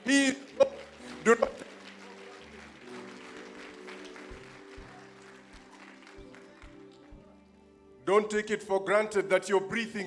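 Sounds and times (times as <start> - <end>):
soft music of sustained chords: 0.0 - 10.0
light clapping: 0.5 - 7.2.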